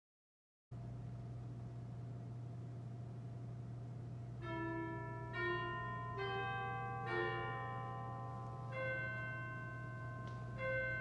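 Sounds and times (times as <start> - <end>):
bell-like chimed notes: 4.4 - 11.0.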